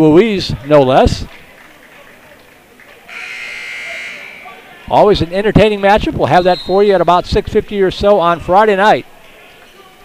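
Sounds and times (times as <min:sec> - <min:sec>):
scoreboard horn buzzing: 0:03.1 - 0:04.8.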